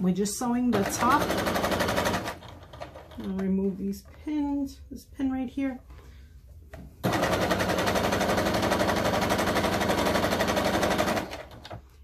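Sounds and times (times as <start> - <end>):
sewing machine stitching: 0.7 - 3.4, 7.0 - 11.8.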